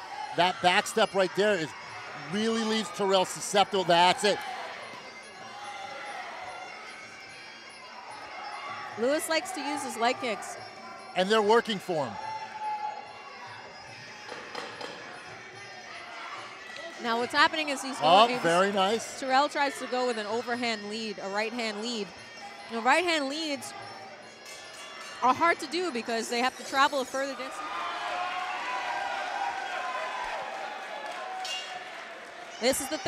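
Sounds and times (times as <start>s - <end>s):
crowd voices: 0.0s - 33.0s.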